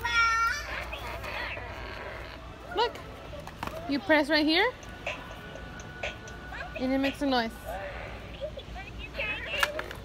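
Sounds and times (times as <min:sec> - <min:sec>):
faint voices: 0:00.0 - 0:10.0.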